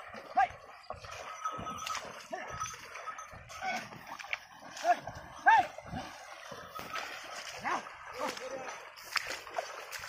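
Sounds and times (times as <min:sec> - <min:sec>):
man shouting: 0:04.8 - 0:05.8.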